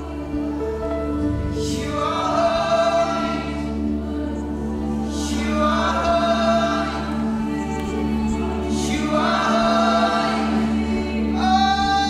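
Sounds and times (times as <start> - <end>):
band with guitar and keyboard: 0.0 - 12.0
group singing held notes: 0.0 - 12.0.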